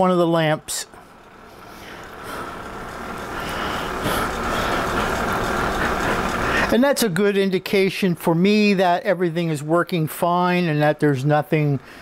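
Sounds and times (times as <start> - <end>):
steady rumble with hiss: 0.0 - 7.4.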